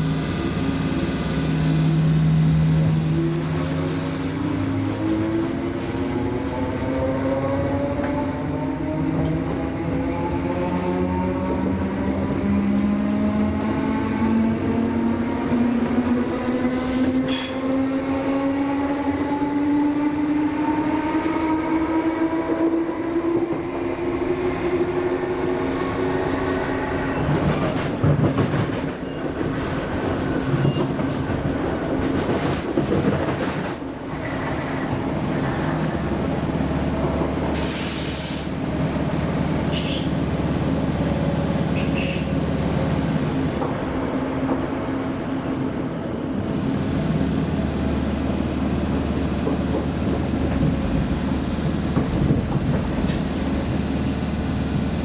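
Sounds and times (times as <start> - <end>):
wheel and track rumble: 0.0 - 55.0.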